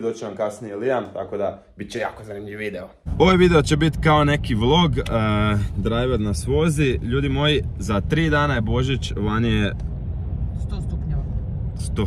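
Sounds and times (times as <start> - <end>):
car rumble inside cabin: 3.1 - 12.0.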